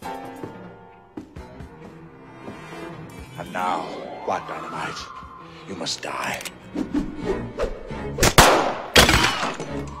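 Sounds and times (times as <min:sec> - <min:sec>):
film score music: 0:00.0 - 0:10.0
pistol gunshots: 0:08.2 - 0:09.6.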